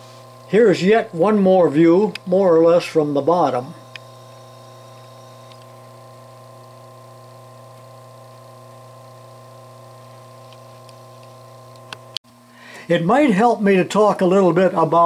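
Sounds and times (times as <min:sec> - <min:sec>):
small electric motor humming: 0:00.0 - 0:15.0.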